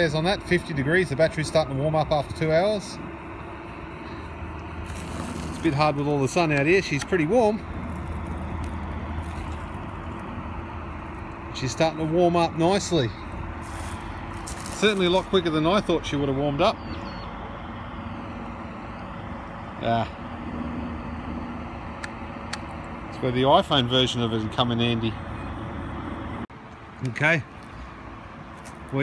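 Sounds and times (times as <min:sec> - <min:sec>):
low background rumble: 0:00.0 - 0:29.0
steady low hum: 0:00.0 - 0:29.0.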